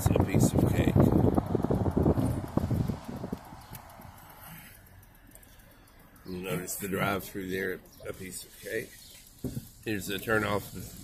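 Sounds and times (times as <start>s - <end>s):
car driving rumble: 0.0s - 5.0s.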